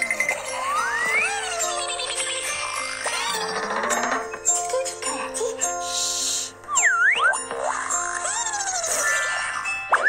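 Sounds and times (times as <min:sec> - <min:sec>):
playful background music: 0:00.0 - 0:10.0
cartoon boing: 0:06.7 - 0:10.0.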